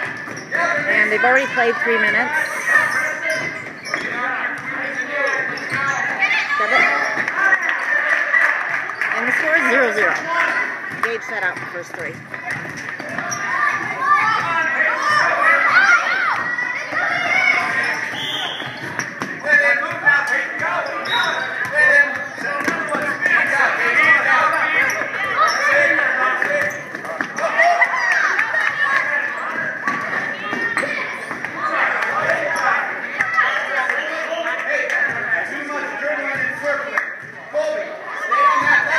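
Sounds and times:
chatter of spectators: 0.0s - 38.9s
basketball bouncing on hardwood floor: 10.9s - 14.5s.

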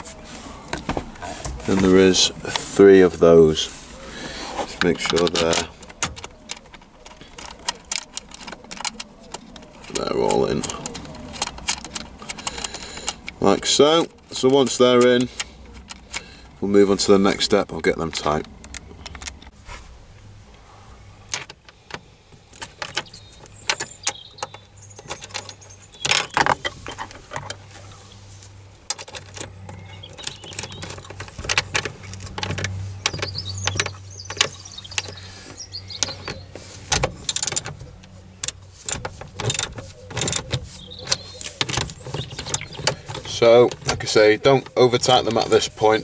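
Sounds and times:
metallic clicks of bolts and tools: 4.8s - 13.4s.

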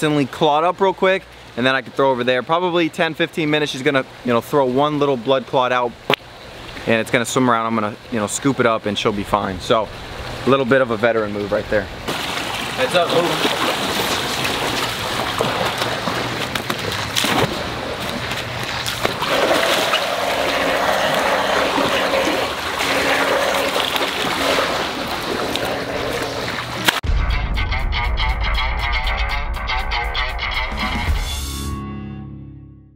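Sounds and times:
water splashing from a net: 12.1s - 27.0s
music with heavy bass: 27.1s - 32.9s.

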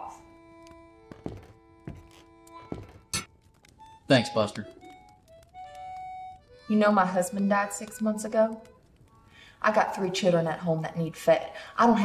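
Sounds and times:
background music long notes: 0.0s - 9.3s.

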